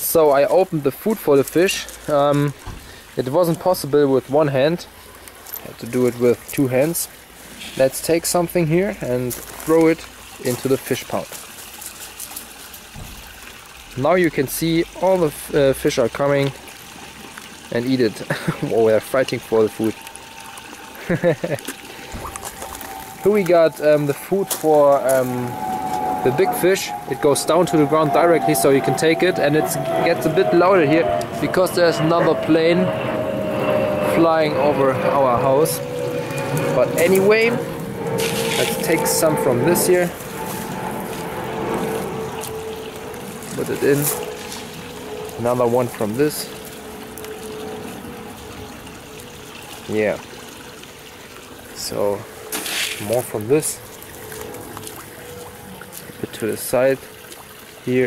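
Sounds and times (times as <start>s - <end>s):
water trickling in a pond: 0.0s - 32.2s, 35.2s - 58.0s.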